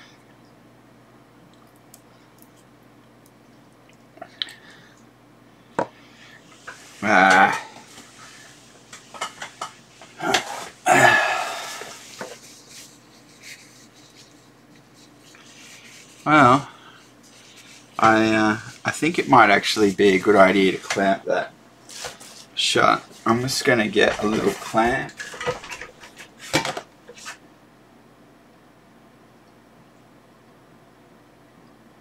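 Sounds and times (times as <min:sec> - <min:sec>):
paper tissue rustling: 0:06.4 - 0:27.4.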